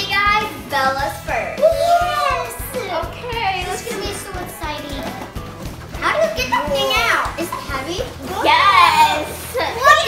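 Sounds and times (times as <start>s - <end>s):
girls' excited high cries: 1.6s - 2.9s.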